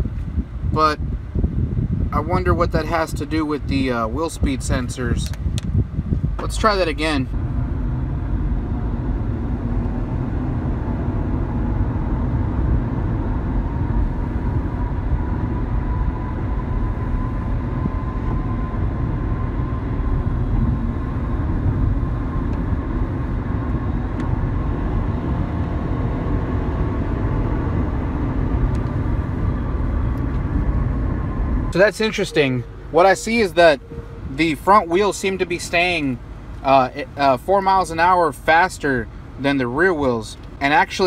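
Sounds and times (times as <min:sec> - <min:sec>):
road and engine rumble: 0:00.0 - 0:41.0
faint rising whine: 0:05.9 - 0:37.2.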